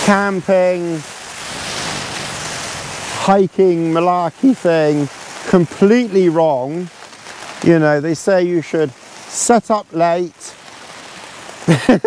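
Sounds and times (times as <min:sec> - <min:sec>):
wind and rain on a tarp: 0:00.0 - 0:12.0.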